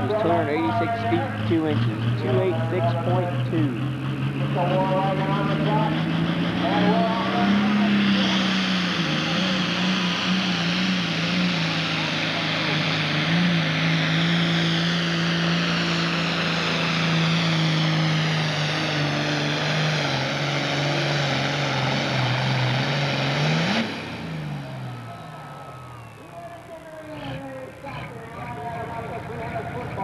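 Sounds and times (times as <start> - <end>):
tractor diesel engine at full throttle: 0.0 - 30.0.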